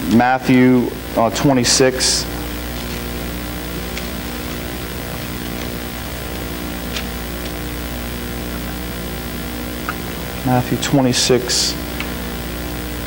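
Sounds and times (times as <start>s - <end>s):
electrical hum and hiss: 0.0s - 13.0s.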